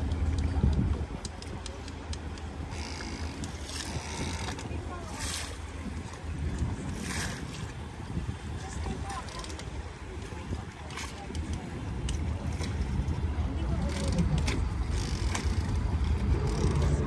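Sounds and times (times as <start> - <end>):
boat engines rumbling: 0.0 - 17.0
water and wind hiss: 0.0 - 17.0.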